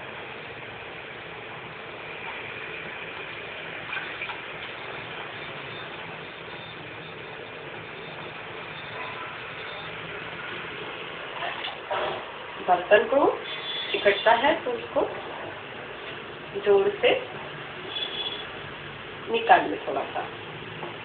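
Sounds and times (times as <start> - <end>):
steady hum and hiss: 0.0 - 21.0.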